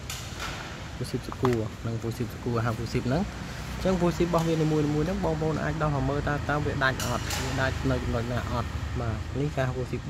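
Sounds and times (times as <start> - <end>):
man talking: 1.0 - 10.0.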